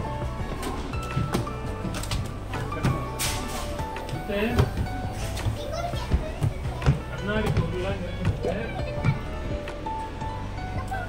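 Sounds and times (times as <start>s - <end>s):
background music: 0.0s - 11.0s
children and adults chattering: 2.4s - 11.0s.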